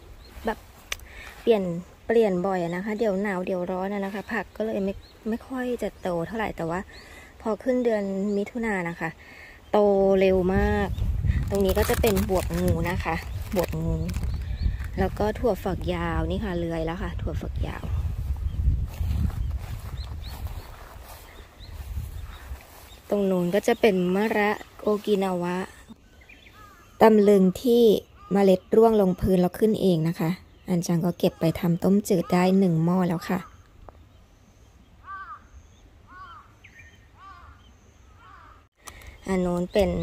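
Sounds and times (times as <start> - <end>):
small birds chirping: 0.0 - 40.0
crow cawing: 26.6 - 27.0, 35.0 - 35.5, 36.1 - 36.6, 37.2 - 37.6, 38.2 - 38.7.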